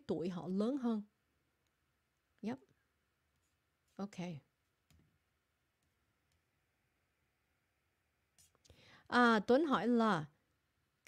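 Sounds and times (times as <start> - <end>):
woman speaking: 0.0 - 1.1, 2.4 - 2.7, 4.0 - 4.5, 9.1 - 10.4.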